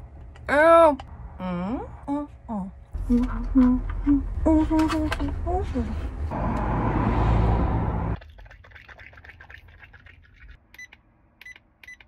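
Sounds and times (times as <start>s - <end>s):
woman humming: 0.5s - 6.1s.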